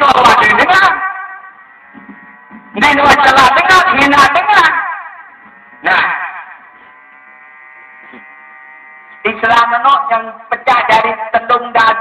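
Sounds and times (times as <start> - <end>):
man's voice: 0.0 - 1.2, 2.7 - 5.2, 5.8 - 6.6, 9.2 - 12.0
electrical buzz: 0.0 - 11.0.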